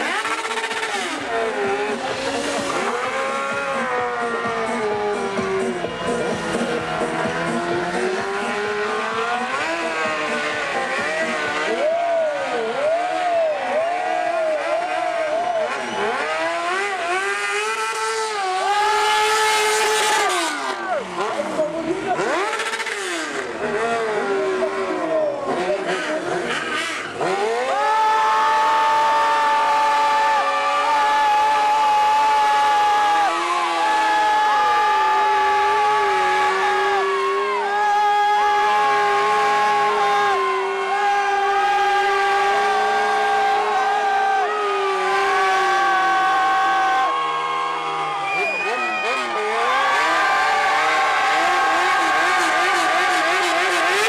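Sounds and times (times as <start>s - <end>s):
motorcycle burnout: 0.0s - 54.0s
motorcycle engine revving: 0.0s - 54.0s.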